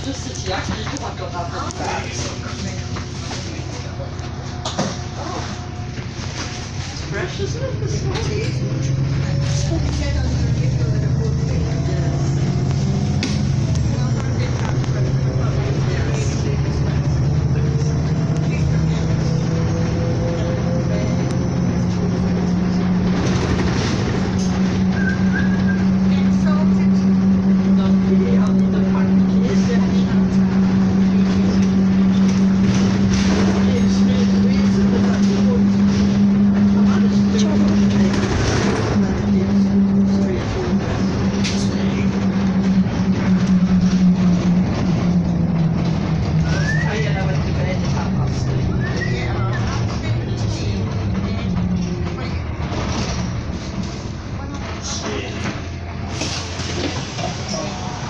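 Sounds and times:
bus engine droning: 0.0s - 58.0s.

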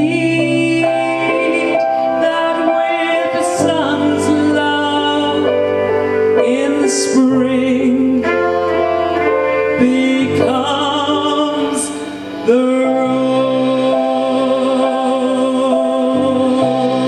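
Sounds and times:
instrumental accompaniment: 0.0s - 17.0s
woman singing with vibrato: 0.0s - 17.0s.

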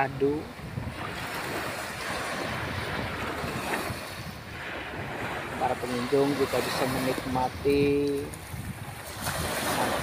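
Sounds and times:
small waves breaking on sand: 0.0s - 10.0s
wind on microphone: 0.0s - 10.0s.

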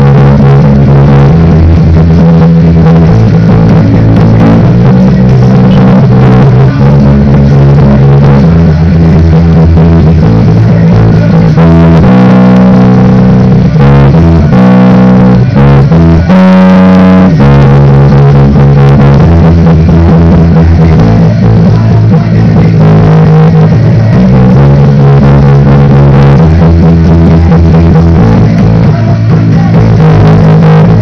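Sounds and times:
electric bass guitar playing: 0.0s - 31.0s.

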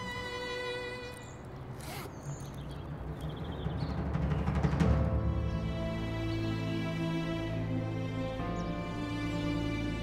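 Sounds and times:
low timpani drum roll: 3.0s - 5.4s.

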